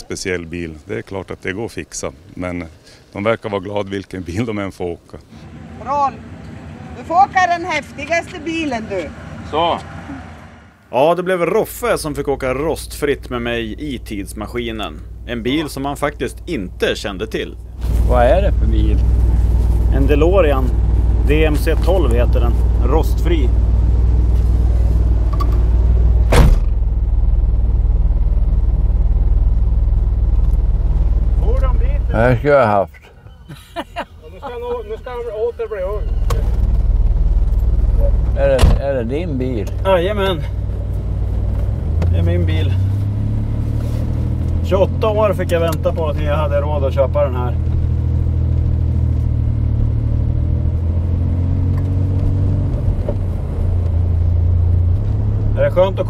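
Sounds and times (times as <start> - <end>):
car engine idling: 5.3 - 11.0, 11.7 - 32.6, 33.8 - 50.3
car door slamming: 26.2 - 26.8, 38.5 - 39.0.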